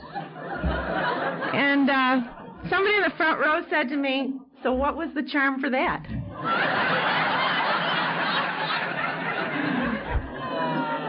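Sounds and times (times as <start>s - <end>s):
audience laughing: 0.0s - 3.2s, 6.2s - 11.0s.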